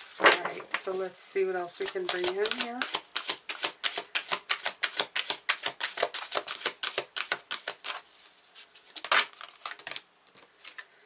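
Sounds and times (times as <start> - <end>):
cards being shuffled: 1.8 - 10.9.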